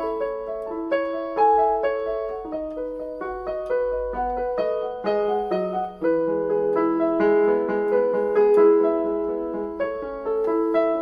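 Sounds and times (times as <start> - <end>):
digital piano melody over chords: 0.0 - 11.0.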